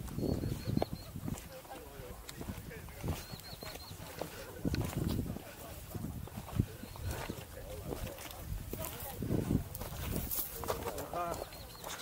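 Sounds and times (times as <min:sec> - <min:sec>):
footsteps on stony dirt trail: 0:00.0 - 0:12.0
people talking: 0:00.0 - 0:12.0.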